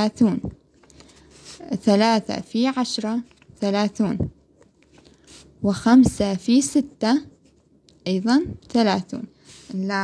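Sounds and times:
woman speaking: 0.0s - 0.6s, 1.5s - 4.4s, 5.6s - 7.4s, 8.0s - 10.0s.

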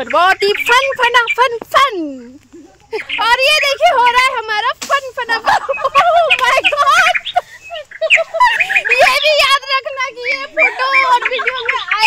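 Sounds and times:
people laughing and squealing: 0.0s - 12.0s.

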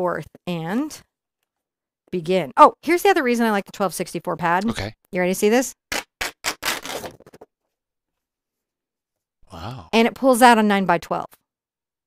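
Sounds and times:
paper rustling and crackling: 6.5s - 7.5s.

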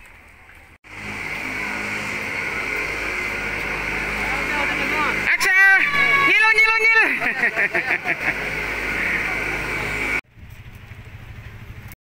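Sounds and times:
carousel ride mechanical hum: 0.2s - 12.0s.

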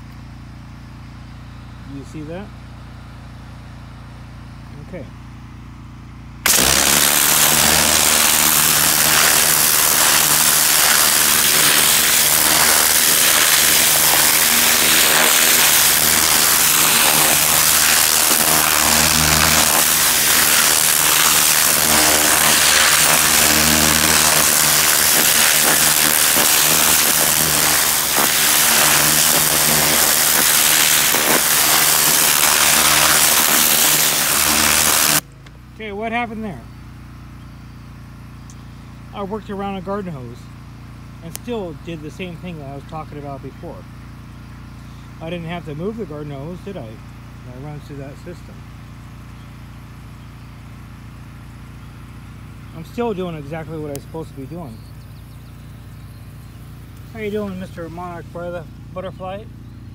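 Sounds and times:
engine running: 0.0s - 59.9s
water jet blasting soil: 6.4s - 35.2s, 44.8s - 59.9s.

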